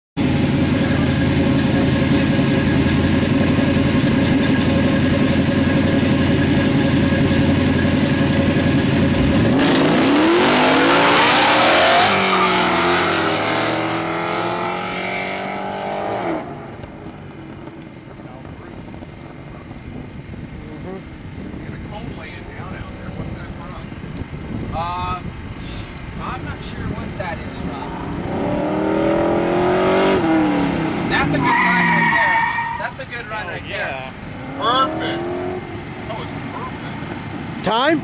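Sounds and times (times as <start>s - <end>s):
car engine idling: 0.2s - 9.6s, 16.4s - 29.3s, 30.2s - 38.0s
car engine revving and accelerating: 0.2s - 22.0s, 27.2s - 32.8s, 34.1s - 38.0s.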